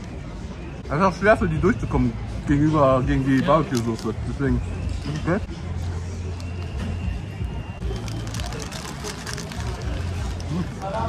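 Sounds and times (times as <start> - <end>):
low traffic rumble: 0.0 - 11.0.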